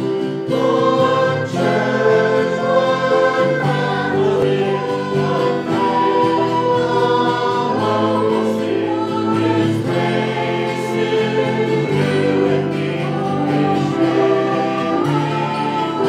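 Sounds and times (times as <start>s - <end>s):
group singing worship music: 0.0s - 16.0s.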